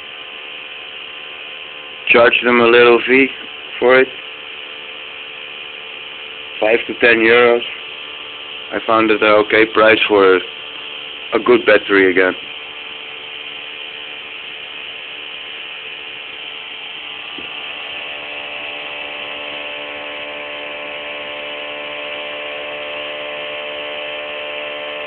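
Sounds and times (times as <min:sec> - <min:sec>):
pulse motor whirring hum: 0:00.0 - 0:25.0.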